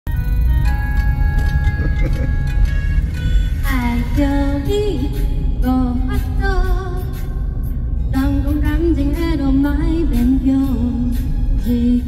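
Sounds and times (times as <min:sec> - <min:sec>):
electronic keyboard notes: 0:00.1 - 0:03.7
heavy bass: 0:00.1 - 0:12.0.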